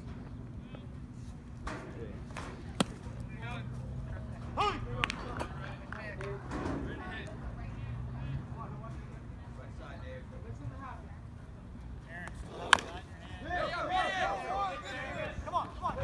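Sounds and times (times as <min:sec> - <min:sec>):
baseball bat hitting ball: 0:02.4 - 0:03.2, 0:12.2 - 0:13.1
spectators' voices: 0:12.0 - 0:16.0.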